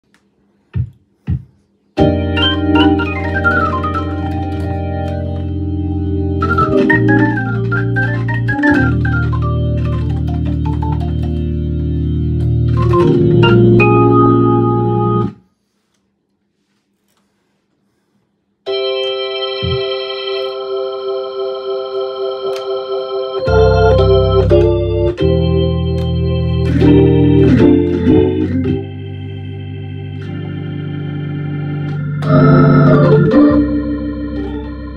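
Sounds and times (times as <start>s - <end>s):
organ playing: 2.0s - 15.4s, 18.7s - 34.9s
pulsing organ chord: 2.0s - 15.4s, 18.7s - 34.9s.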